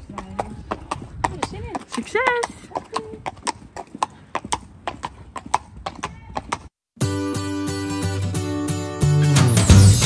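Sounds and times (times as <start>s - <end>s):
horse hooves on brick paving: 0.0s - 6.7s.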